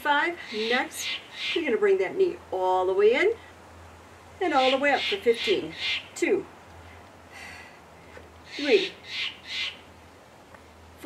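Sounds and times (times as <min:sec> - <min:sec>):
squirrel chattering calls: 0:00.4 - 0:01.8, 0:04.4 - 0:06.2, 0:08.4 - 0:09.9.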